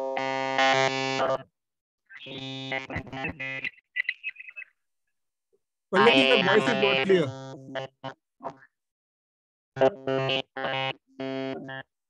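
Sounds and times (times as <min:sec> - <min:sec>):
loud buzzing tone: 0:00.0 - 0:01.4, 0:02.2 - 0:03.8, 0:06.0 - 0:08.2, 0:09.8 - 0:11.9.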